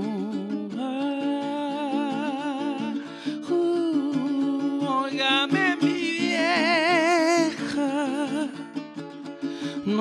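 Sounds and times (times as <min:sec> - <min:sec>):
man singing with vibrato: 0:00.0 - 0:09.0, 0:09.6 - 0:10.0
acoustic guitar strumming: 0:04.4 - 0:10.0.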